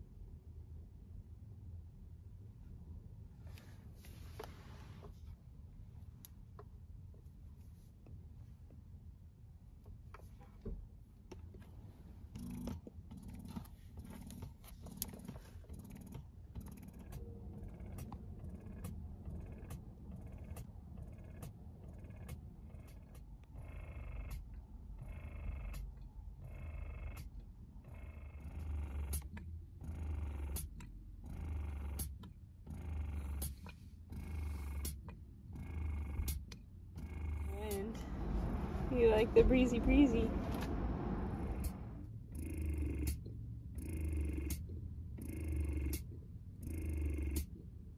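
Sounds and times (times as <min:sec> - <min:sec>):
breast pump motor pulsing: 0:12.4 - 0:24.4, 0:27.8 - 0:34.9, 0:37.0 - 0:43.2, 0:45.2 - 0:46.0.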